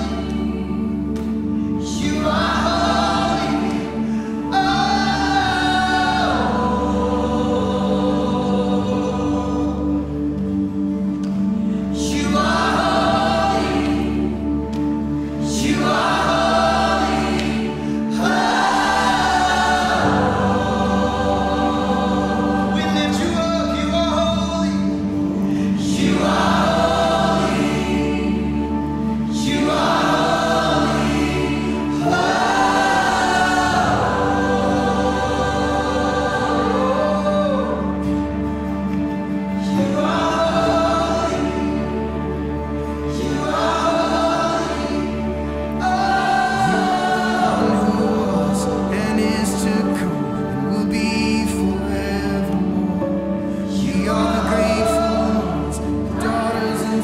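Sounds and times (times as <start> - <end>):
congregation singing: 0.0 - 57.0
steady held chord: 0.0 - 57.0.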